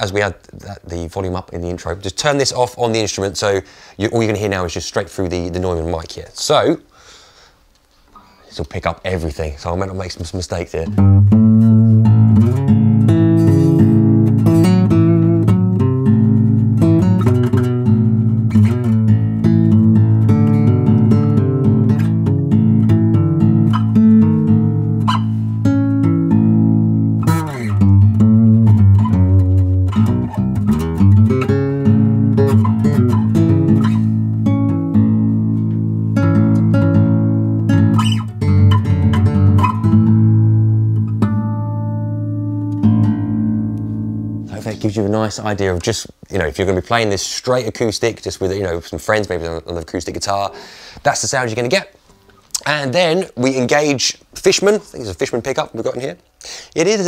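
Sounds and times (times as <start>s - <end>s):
acoustic bass guitar plucked: 10.8s - 44.9s.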